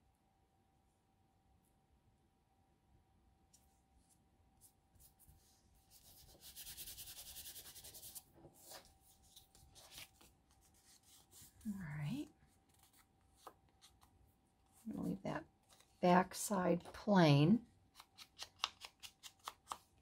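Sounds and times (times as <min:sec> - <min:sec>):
fingers rubbing paper: 0:05.9 - 0:08.8
faint paper handling: 0:07.8 - 0:16.1.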